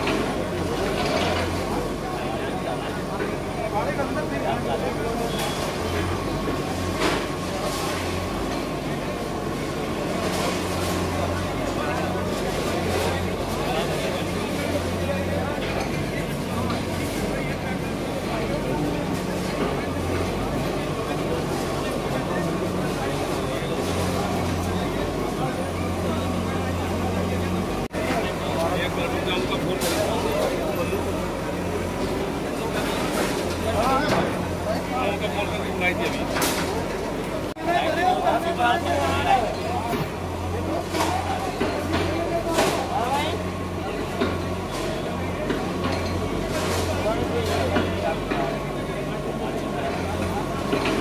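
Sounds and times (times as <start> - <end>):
people talking: 0.0 - 51.0
voices of onlookers: 0.0 - 51.0.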